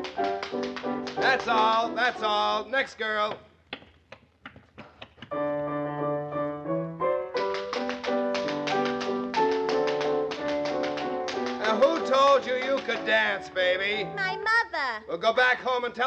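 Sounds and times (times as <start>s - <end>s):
tap-dance steps: 0.0s - 2.2s, 3.2s - 5.4s, 7.4s - 13.3s
piano tune: 0.0s - 2.7s, 5.3s - 14.7s
person speaking: 1.2s - 3.5s, 11.5s - 16.0s.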